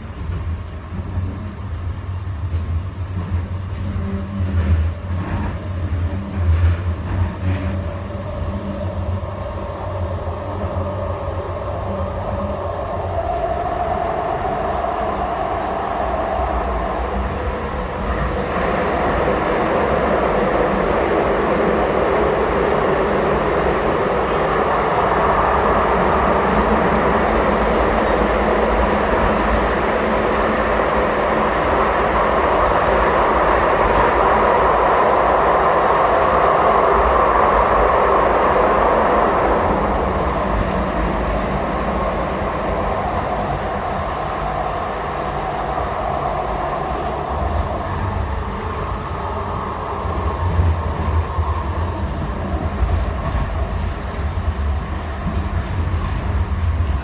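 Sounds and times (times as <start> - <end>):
rail car wheels and motors rumbling: 0.0 - 57.0.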